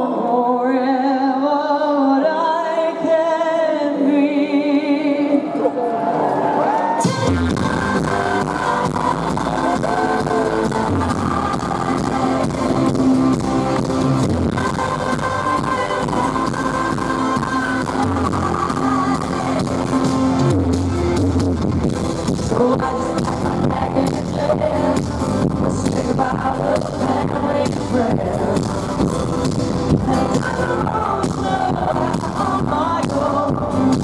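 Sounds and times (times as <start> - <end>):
woman singing: 0.0 - 5.7, 7.0 - 20.8, 22.3 - 29.1, 29.9 - 34.0
band with drums and bass: 7.0 - 34.0.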